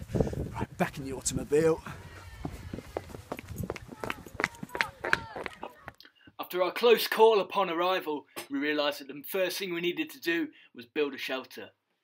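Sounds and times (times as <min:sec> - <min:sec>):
footsteps running on grass: 0:00.2 - 0:06.0
faint voices: 0:00.6 - 0:06.0.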